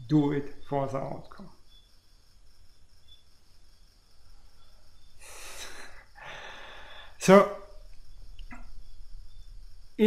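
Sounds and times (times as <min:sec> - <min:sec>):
man breathing: 0:05.2 - 0:07.2.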